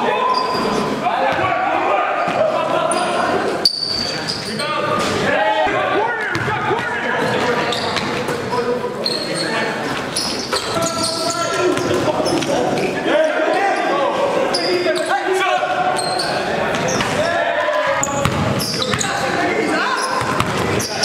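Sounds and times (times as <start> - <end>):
basketball bouncing on floor: 6.3 - 6.6, 18.2 - 19.0, 20.2 - 20.8.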